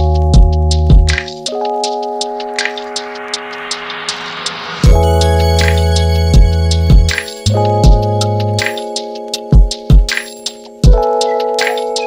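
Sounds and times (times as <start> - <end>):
held keyboard chord: 0.0 - 3.6, 4.8 - 12.0.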